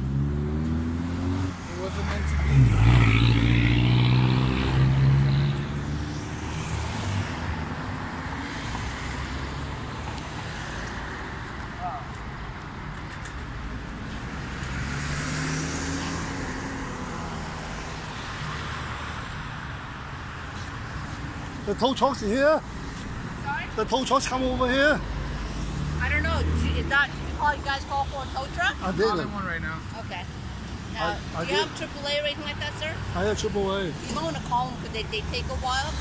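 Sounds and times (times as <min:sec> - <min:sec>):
vehicle passing: 0:00.0 - 0:11.7, 0:12.8 - 0:19.5, 0:22.1 - 0:36.0
steady traffic noise: 0:00.0 - 0:36.0.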